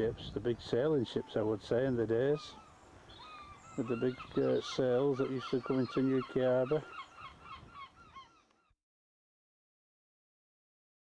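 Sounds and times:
birds calling: 0:00.0 - 0:08.8.

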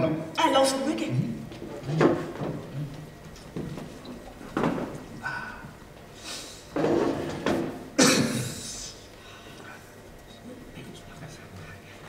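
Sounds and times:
low room hum: 0:00.0 - 0:12.0
faint footsteps on stage: 0:01.4 - 0:06.1.

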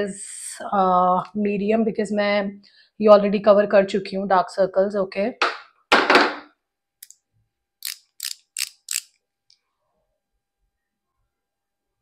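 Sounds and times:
ratcheting clicks of twist collar: 0:07.8 - 0:09.2.

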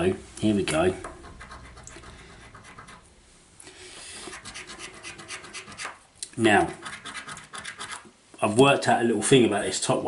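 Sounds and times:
scratchcard being scraped: 0:01.2 - 0:03.1, 0:04.2 - 0:06.0, 0:06.6 - 0:08.1.

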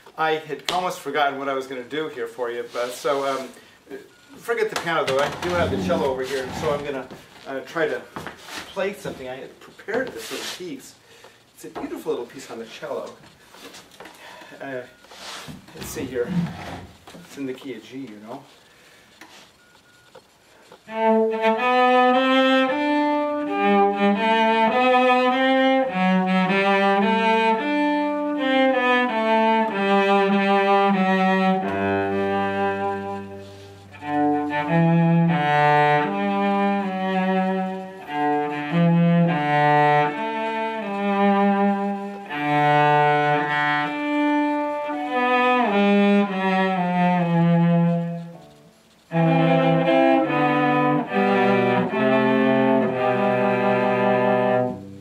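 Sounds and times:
bowed cello melody: 0:01.5 - 0:10.2, 0:14.6 - 0:18.4, 0:20.6 - 0:55.0.

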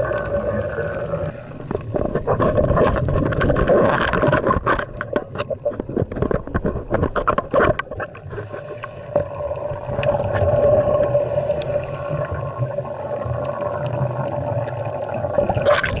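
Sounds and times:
rush of bubbles: 0:00.0 - 0:16.0
underwater rumble and gurgle: 0:00.0 - 0:16.0.

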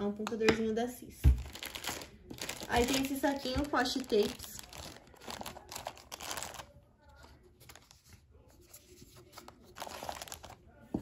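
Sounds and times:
plastic bag crinkling: 0:01.4 - 0:06.7, 0:09.7 - 0:10.6.

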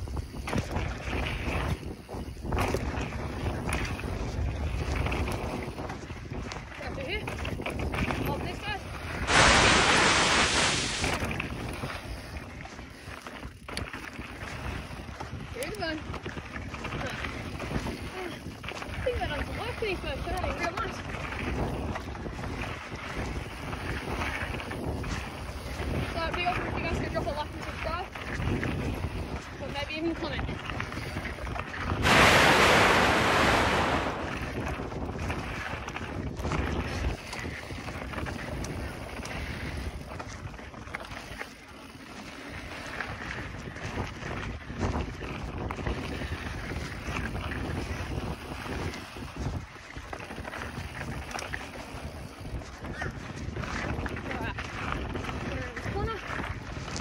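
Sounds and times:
wind buffeting microphone: 0:00.0 - 0:41.4, 0:42.2 - 0:57.0
bike tyres rolling over dirt: 0:00.0 - 0:57.0.

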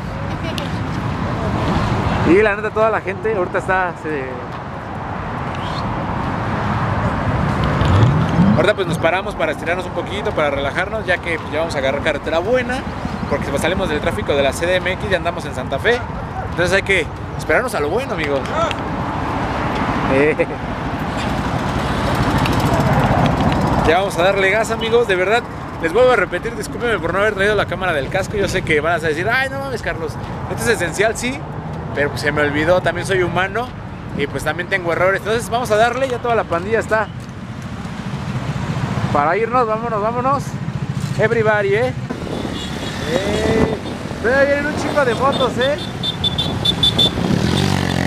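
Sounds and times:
highway traffic roar: 0:00.0 - 0:48.0
vehicle passing close by: 0:05.0 - 0:09.8, 0:18.5 - 0:24.4, 0:40.6 - 0:48.0
motorcycle engines idling: 0:20.2 - 0:30.4.

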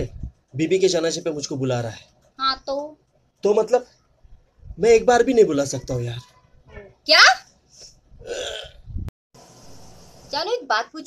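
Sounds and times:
woman speaking sharply: 0:06.8 - 0:07.4, 0:10.4 - 0:11.0
man gagging croak: 0:08.2 - 0:08.8.

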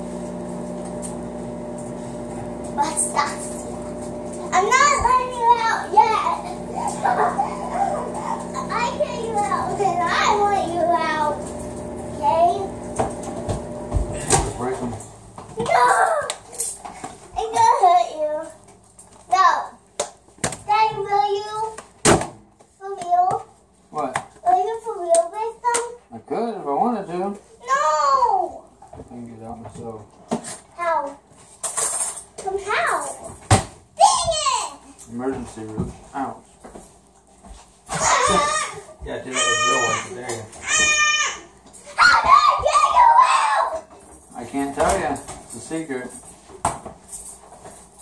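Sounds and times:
children chattering: 0:04.5 - 0:11.5.

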